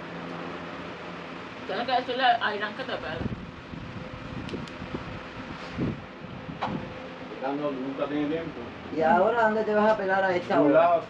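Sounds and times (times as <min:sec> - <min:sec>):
low thump: 0:06.6 - 0:06.8.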